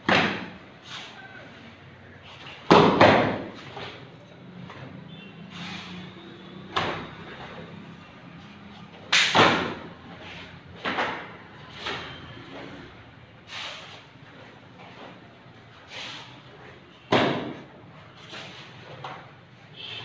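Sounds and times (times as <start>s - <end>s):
bare feet thudding on mats: 6.7s - 7.6s, 17.1s - 17.7s
karate uniform snapping: 9.1s - 9.4s.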